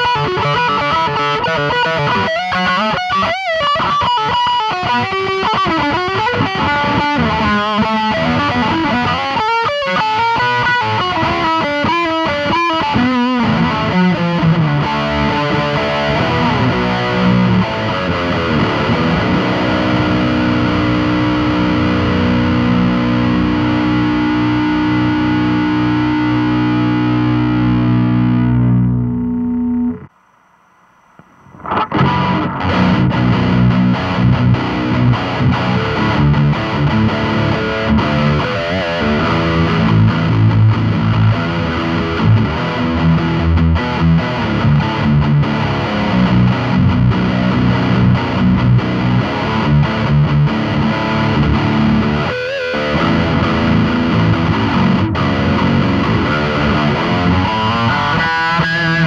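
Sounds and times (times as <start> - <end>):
distorted electric guitar: 0.0 - 59.0.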